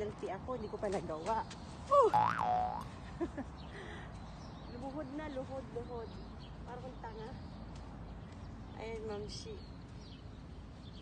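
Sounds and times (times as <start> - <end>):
comic boing sound effect: 2.2 - 2.8.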